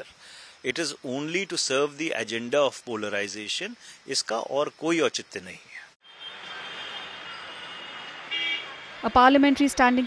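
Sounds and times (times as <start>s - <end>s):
street traffic noise: 3.2s - 10.0s
car horn toot: 6.1s - 8.7s.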